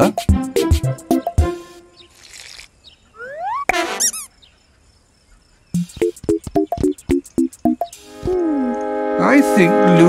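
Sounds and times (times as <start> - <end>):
light music: 0.0 - 2.0, 5.8 - 10.0.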